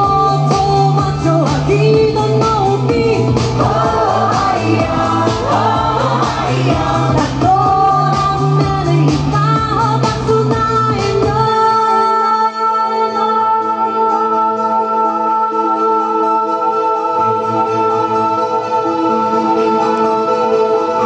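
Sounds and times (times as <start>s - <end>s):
woman singing into a microphone: 0.0s - 21.0s
dance beat with bass: 0.8s - 11.4s.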